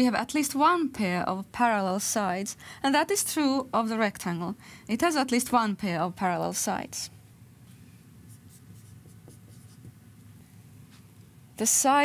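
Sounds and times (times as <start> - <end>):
low room hum: 0.0 - 12.0
marker writing on whiteboard: 8.2 - 10.1.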